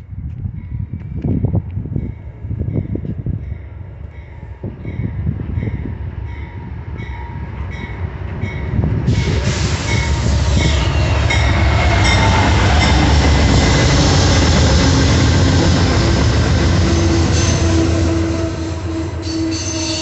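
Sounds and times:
train wheels on rails: 0:00.0 - 0:20.0.

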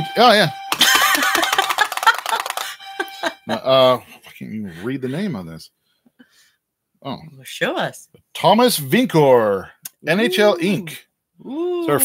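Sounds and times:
recorded music from sound box: 0:00.0 - 0:04.0.

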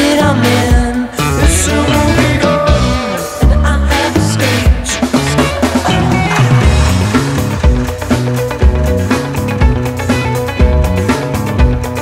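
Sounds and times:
bass line: 0:00.0 - 0:12.0
rock band playing loud: 0:00.0 - 0:12.0.

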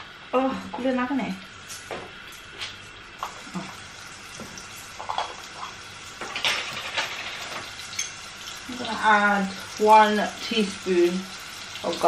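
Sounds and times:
onion sizzling in oil: 0:00.0 - 0:12.0.

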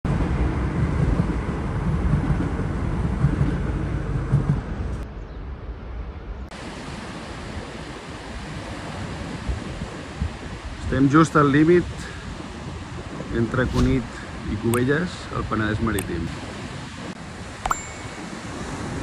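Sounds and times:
wind buffeting microphone: 0:07.3 - 0:19.0.

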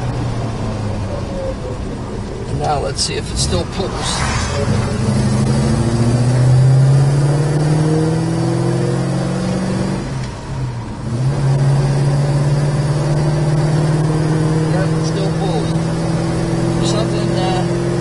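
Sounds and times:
car engine while driving: 0:00.0 - 0:18.0.

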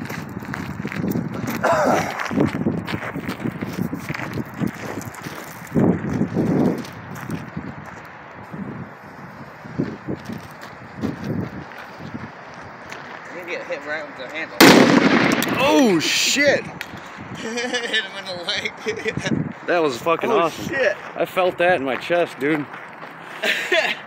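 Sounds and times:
footsteps crunching on gravel: 0:00.0 - 0:13.7, 0:19.6 - 0:23.3.

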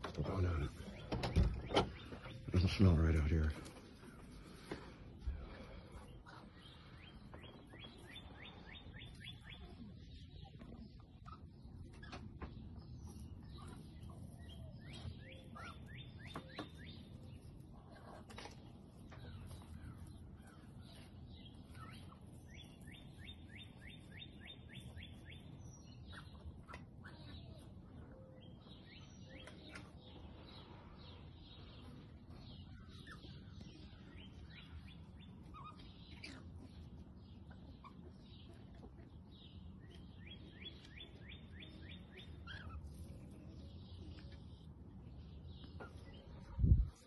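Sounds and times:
songbird singing: 0:00.0 - 0:47.0.

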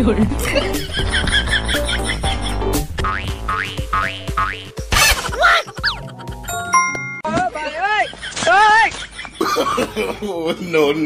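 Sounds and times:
background music: 0:00.0 - 0:07.7.

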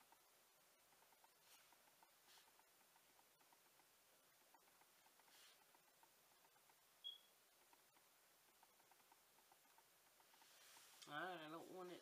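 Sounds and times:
faint small ticks: 0:00.0 - 0:11.2
faint room hiss: 0:00.0 - 0:12.0.

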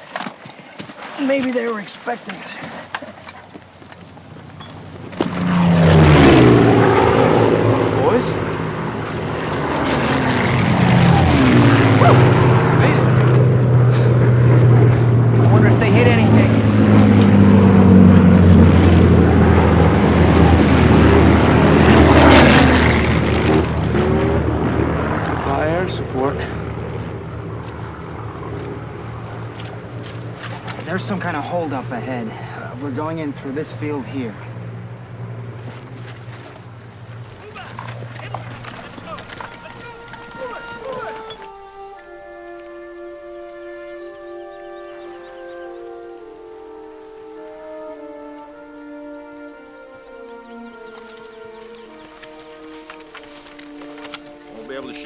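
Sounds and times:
propeller aircraft engine drone: 0:02.3 - 0:55.0.

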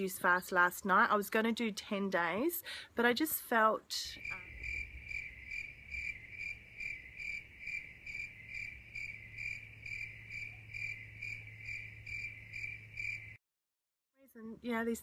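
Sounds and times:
cricket chirping: 0:04.2 - 0:13.4.

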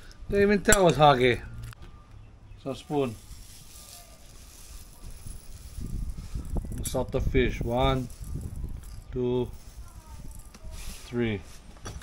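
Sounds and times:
low handling rumble on microphone: 0:01.3 - 0:02.6
salt pouring hiss: 0:03.0 - 0:06.6.

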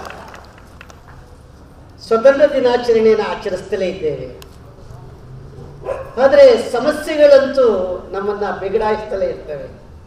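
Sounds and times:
man speaking over loudspeaker: 0:02.0 - 0:04.4, 0:06.2 - 0:09.8.

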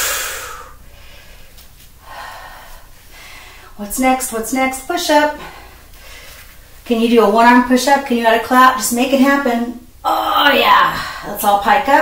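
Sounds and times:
woman's hissing breath: 0:00.0 - 0:03.8.

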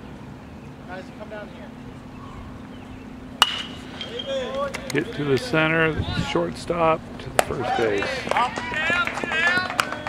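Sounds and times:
metal bat hitting a ball: 0:03.4 - 0:04.3.

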